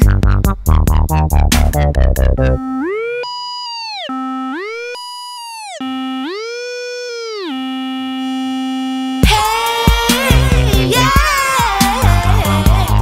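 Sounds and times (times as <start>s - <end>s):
synthesizer tone sliding up and down: 0.0s - 9.8s.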